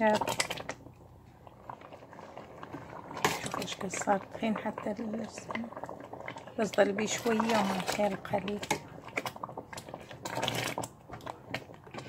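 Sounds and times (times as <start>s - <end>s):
tomato pulp bubbling in a pot: 0.0s - 12.0s.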